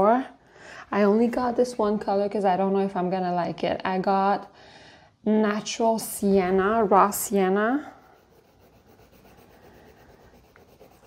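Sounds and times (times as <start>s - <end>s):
pastel scratching on paper: 7.7s - 11.0s.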